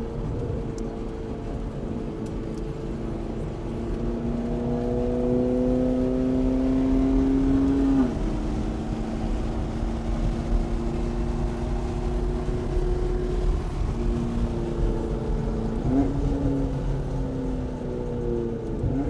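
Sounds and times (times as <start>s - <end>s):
car engine accelerating: 0.0s - 19.0s.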